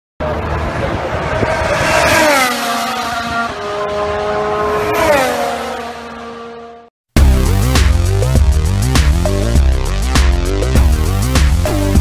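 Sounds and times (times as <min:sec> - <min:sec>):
high-revving racing car engine: 0:00.2 - 0:06.9.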